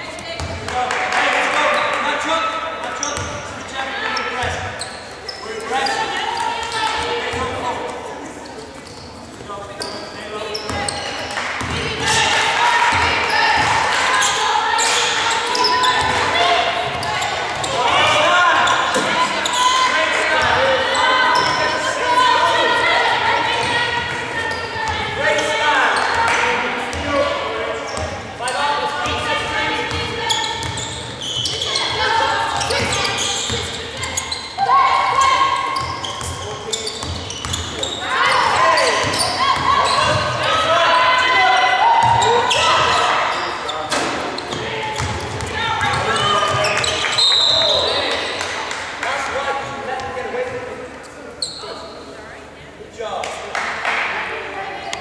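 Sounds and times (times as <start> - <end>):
basketball bouncing on court: 0.2 - 0.8, 11.6 - 12.3, 29.8 - 32.0, 35.8 - 37.9, 44.0 - 47.0
players shouting: 10.5 - 48.6.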